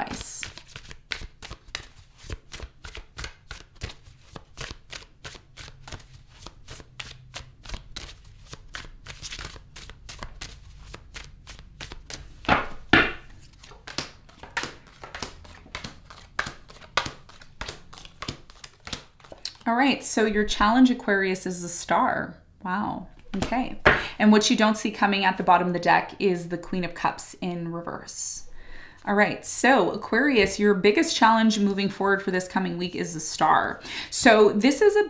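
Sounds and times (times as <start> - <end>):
cards being shuffled: 0.0 - 19.6.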